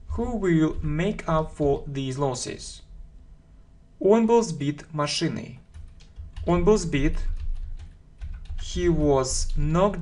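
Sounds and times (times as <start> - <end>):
man speaking: 0.0 - 2.9, 4.0 - 5.7, 6.4 - 7.4, 8.6 - 10.0
keyboard typing clicks: 5.6 - 9.8.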